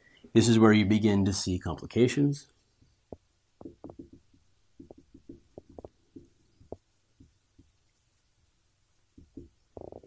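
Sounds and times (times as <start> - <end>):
marker writing on whiteboard: 3.2 - 7.8.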